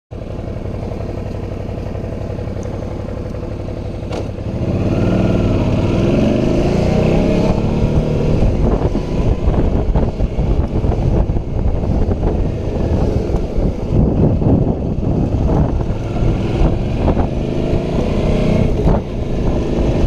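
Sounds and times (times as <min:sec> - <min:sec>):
motorcycle engine idling: 0:00.1 - 0:05.8, 0:08.4 - 0:17.3
motorcycle accelerating: 0:00.2 - 0:20.0.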